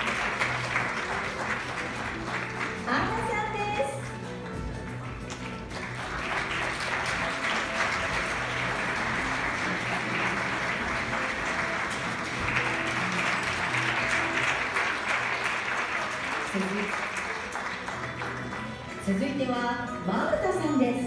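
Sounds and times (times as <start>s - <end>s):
audience applauding: 0.0s - 19.0s
background music: 0.0s - 21.0s.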